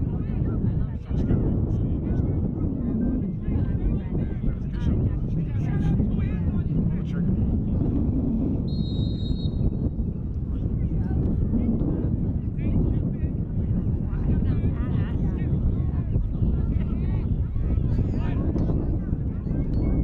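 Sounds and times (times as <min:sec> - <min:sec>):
wind buffeting microphone: 0:00.0 - 0:20.0
distant shouts and voices: 0:08.6 - 0:20.0.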